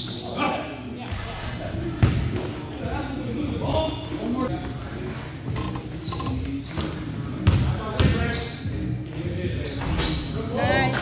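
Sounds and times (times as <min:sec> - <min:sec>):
sneakers squeaking on gym floor: 0:00.0 - 0:02.3, 0:04.5 - 0:10.6
basketball bouncing: 0:02.0 - 0:02.4, 0:07.4 - 0:08.2.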